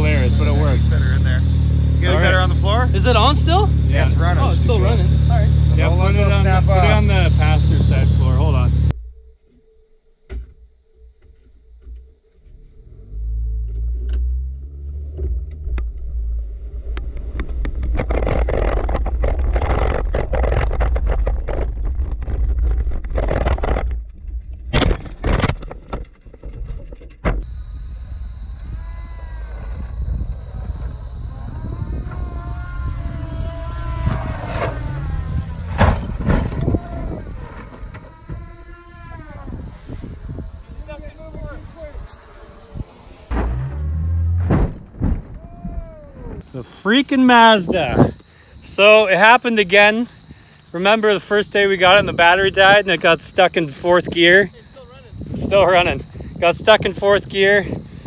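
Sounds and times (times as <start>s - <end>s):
car engine rumbling: 0.0s - 9.3s, 11.8s - 25.2s, 27.2s - 50.3s
sharp knocks and scrapes: 16.8s - 27.4s, 35.6s - 36.8s, 43.3s - 45.4s.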